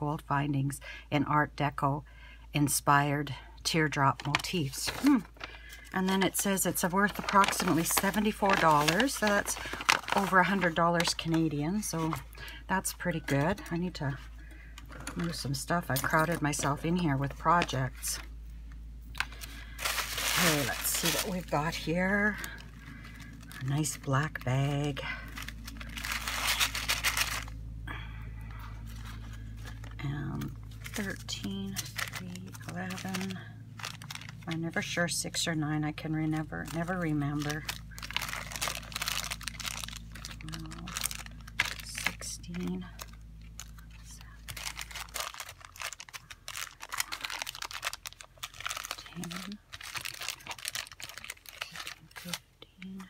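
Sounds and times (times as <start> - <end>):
low steady background hum: 0.0 - 53.0
plastic bags crinkling and rustling: 4.1 - 18.3, 19.1 - 27.6, 28.8 - 34.9, 36.2 - 53.0.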